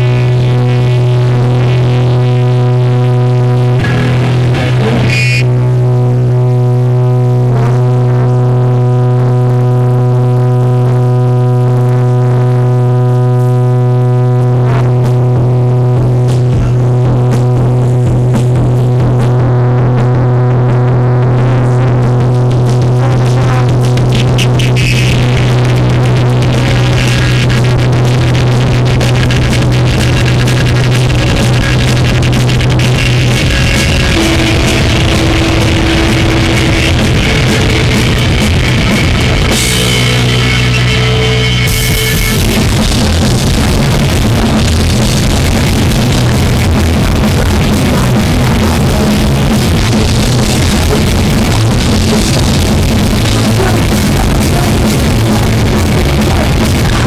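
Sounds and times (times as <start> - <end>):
punk band playing live: 0.0 - 5.5, 14.8 - 57.0
percussive hits: 33.8 - 40.0.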